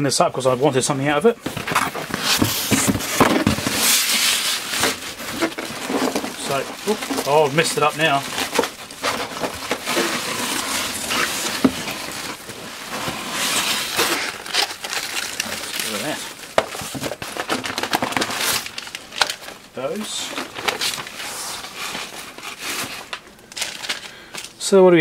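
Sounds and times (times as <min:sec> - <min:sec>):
cardboard box rustling and scraping: 0:01.4 - 0:19.4, 0:20.0 - 0:24.0
plastic bags crinkling: 0:01.4 - 0:24.7.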